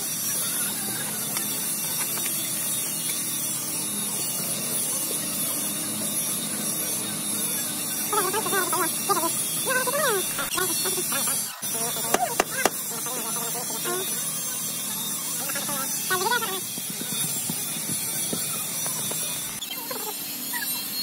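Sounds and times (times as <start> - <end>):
workshop hiss: 0.0 - 21.0.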